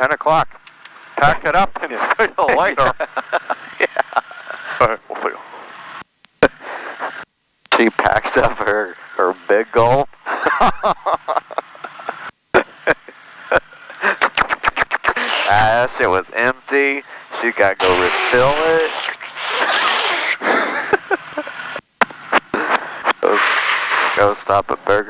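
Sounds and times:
voices over radio intercom: 0:01.1 - 0:05.7, 0:06.4 - 0:10.1, 0:13.9 - 0:19.6, 0:22.3 - 0:25.0.

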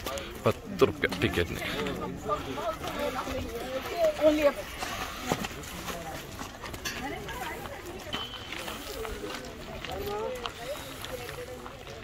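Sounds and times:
people talking at a distance: 0:00.0 - 0:12.0.

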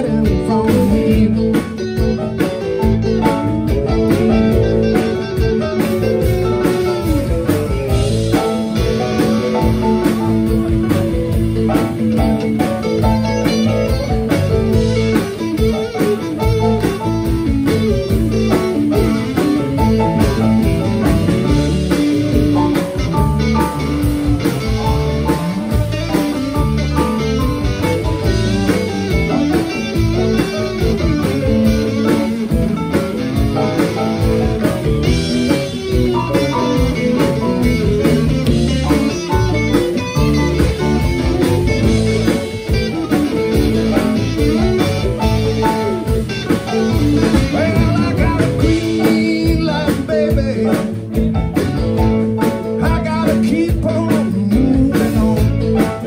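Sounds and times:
electric guitar: 0:00.0 - 0:56.0
live blues band playing: 0:00.0 - 0:56.0.

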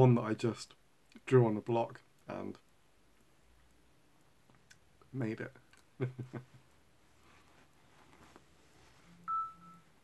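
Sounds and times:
short electronic beep: 0:09.3 - 0:09.9.

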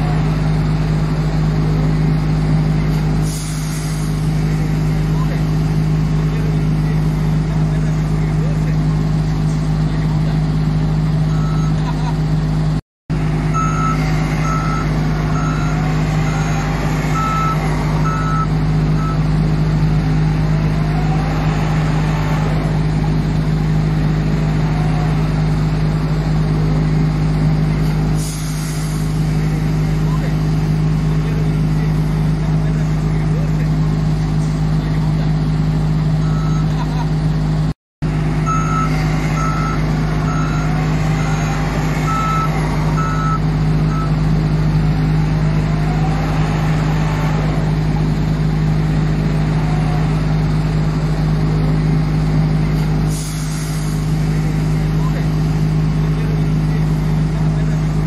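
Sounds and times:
wheel loader diesel engine: 0:00.0 - 0:58.0
reversing alarm beeps: 0:11.3 - 0:11.8, 0:13.5 - 0:16.5, 0:17.1 - 0:19.3, 0:36.2 - 0:36.7, 0:38.5 - 0:41.4, 0:42.0 - 0:44.2.

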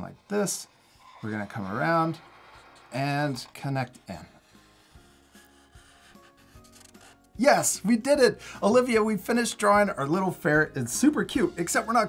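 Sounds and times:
marker rubbing on paper: 0:00.0 - 0:07.3.

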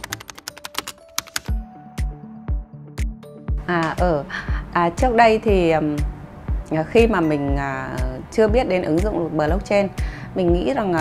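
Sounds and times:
keyboard typing clicks: 0:00.0 - 0:01.5
background music with low beat: 0:00.0 - 0:11.0.

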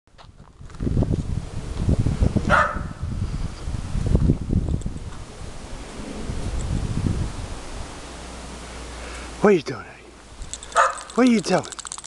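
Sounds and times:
wind buffeting microphone: 0:00.2 - 0:08.1
dog barking: 0:02.5 - 0:03.0, 0:10.7 - 0:11.2.

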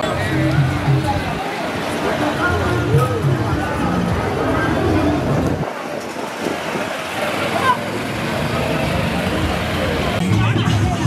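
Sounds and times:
pickup truck moving: 0:00.0 - 0:10.6
people's voices: 0:00.0 - 0:11.0
road traffic: 0:00.0 - 0:11.0.

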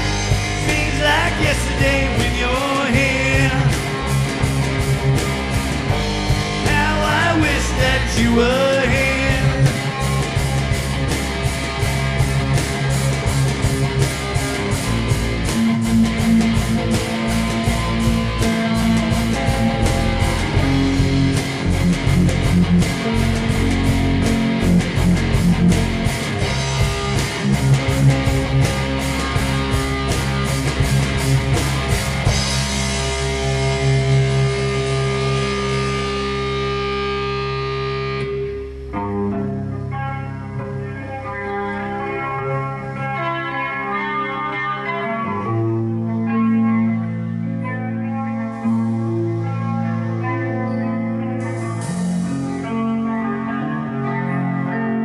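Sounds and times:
fast dense drumming: 0:00.0 - 0:34.0
bass guitar: 0:00.0 - 0:55.0
distorted electric guitars: 0:00.0 - 0:55.0.

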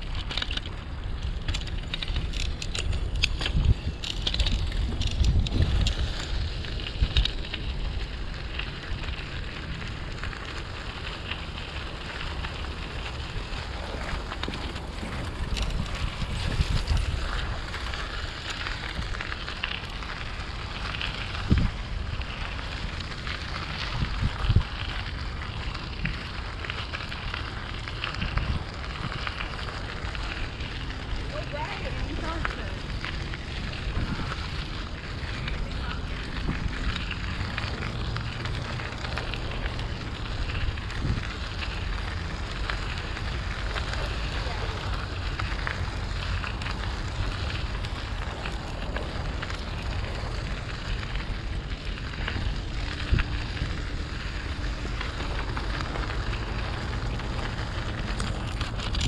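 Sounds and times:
wind on microphone: 0:00.0 - 0:08.3, 0:12.7 - 0:19.4, 0:20.2 - 0:26.6, 0:28.0 - 0:59.0
bicycle tyre rumble: 0:00.0 - 0:59.0
crackling from path surface: 0:00.0 - 0:59.0.

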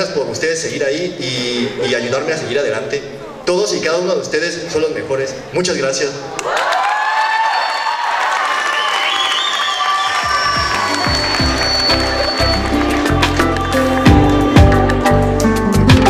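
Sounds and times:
audience applauding and cheering: 0:06.4 - 0:15.5
music with steady bass line: 0:10.4 - 0:16.0.

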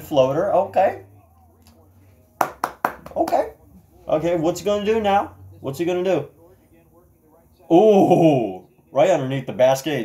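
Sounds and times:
hand claps: 0:02.4 - 0:03.4.

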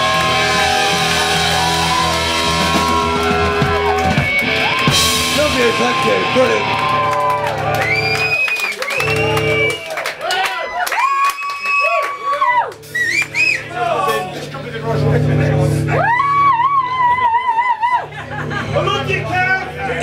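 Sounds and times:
low bass notes: 0:00.0 - 0:08.2, 0:12.8 - 0:16.8.

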